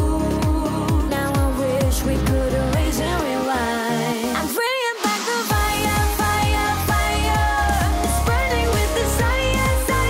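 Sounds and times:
heavy bass beat: 0.0s - 4.5s, 5.5s - 10.0s.

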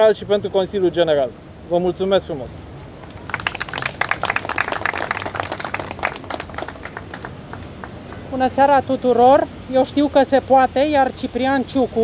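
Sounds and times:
small group applauding: 3.0s - 8.3s.

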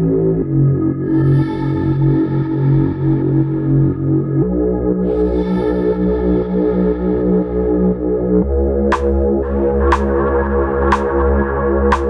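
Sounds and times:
sustained synthesizer chords: 0.0s - 12.0s.

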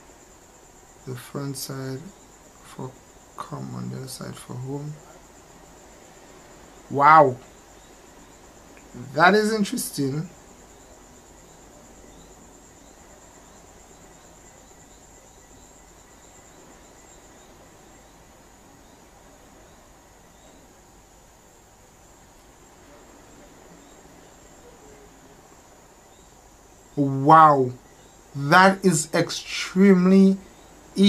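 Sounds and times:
low hiss: 0.0s - 31.0s.

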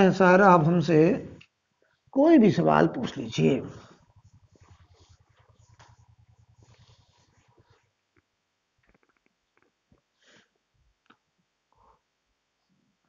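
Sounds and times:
duster rubbing a whiteboard: 3.8s - 7.9s.

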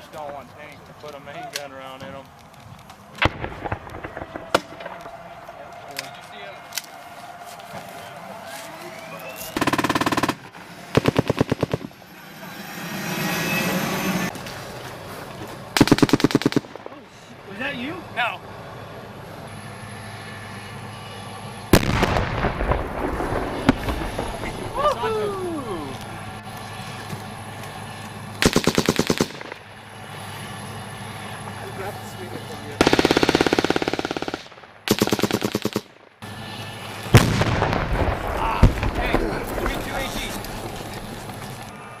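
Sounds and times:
gunshots echoing: 3.2s - 5.4s, 21.8s - 24.8s, 32.8s - 36.0s, 37.1s - 40.4s
automatic gunfire bursts: 9.6s - 11.9s, 15.8s - 16.8s, 28.4s - 29.6s, 32.8s - 35.9s.

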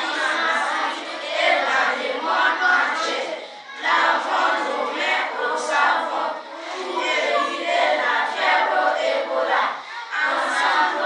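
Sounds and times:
children reciting in unison: 0.0s - 11.0s.

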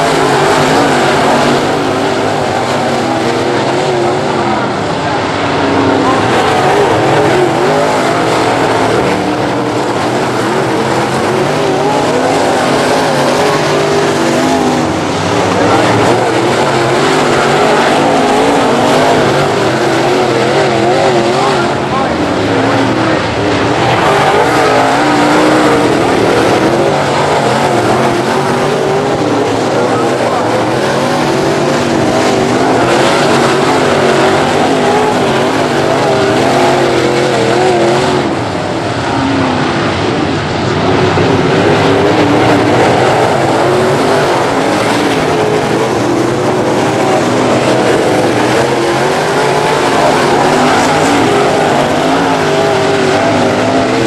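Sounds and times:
race car engines revving: 0.0s - 54.0s.

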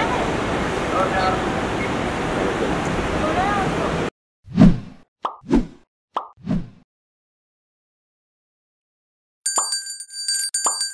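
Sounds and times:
airport terminal hubbub: 0.0s - 4.1s
cartoon pop sound effects: 5.2s - 5.5s, 6.2s - 6.4s.

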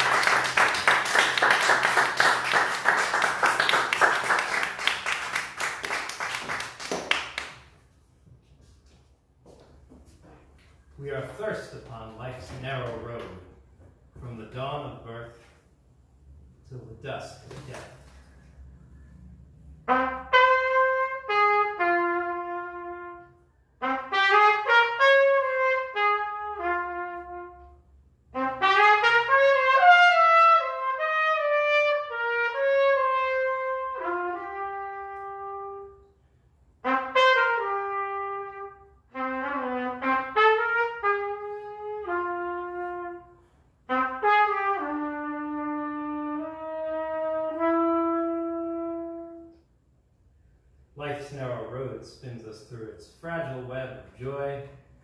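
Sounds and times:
solo trumpet melody: 0.0s - 6.6s, 19.8s - 49.7s.

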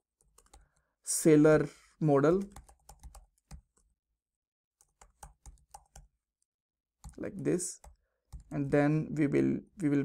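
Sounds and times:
faint keyboard typing: 0.2s - 0.9s, 2.3s - 4.0s, 4.8s - 6.2s, 7.0s - 8.8s.

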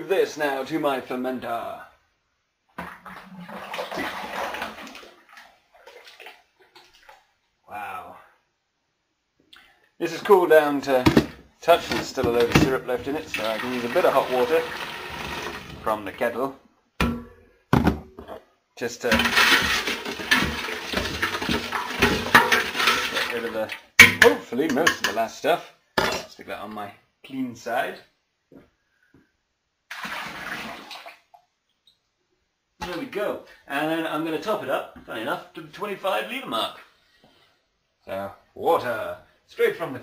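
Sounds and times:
syrup pouring into plastic bucket: 13.0s - 15.8s, 19.1s - 23.5s
metal pot knocks and clinks: 19.1s - 23.2s, 24.0s - 25.2s.

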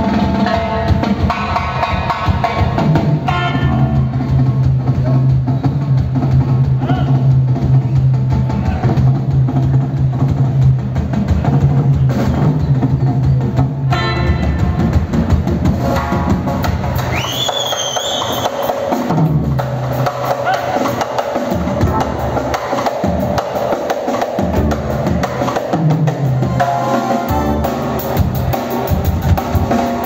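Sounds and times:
percussion-led band music: 0.0s - 30.0s.

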